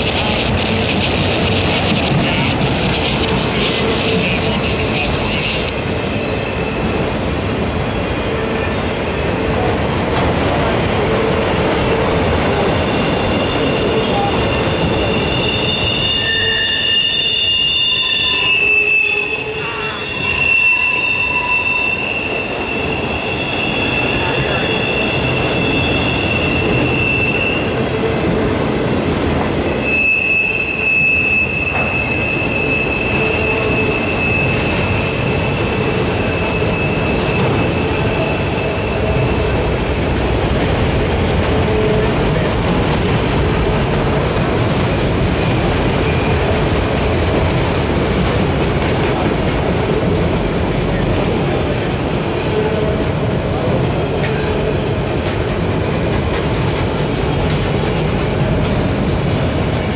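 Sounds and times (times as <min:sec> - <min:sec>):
freight train wheels rumbling on rail: 0:00.0 - 0:59.9
high-pitched wheel squeal: 0:12.8 - 0:27.8, 0:29.8 - 0:39.4.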